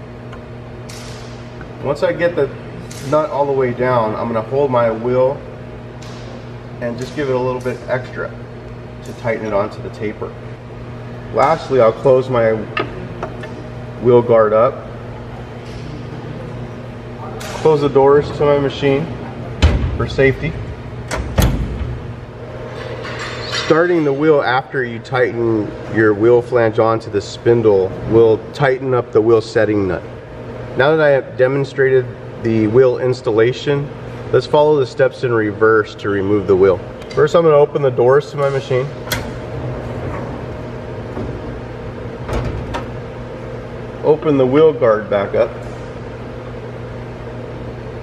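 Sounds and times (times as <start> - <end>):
steady low hum: 0.0 - 48.0
enclosure doors knocking shut: 19.6 - 20.2, 21.1 - 22.1.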